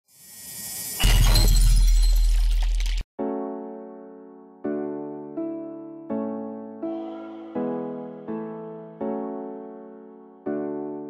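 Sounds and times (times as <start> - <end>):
glassy shattering sparkle: 0.1 - 3.0.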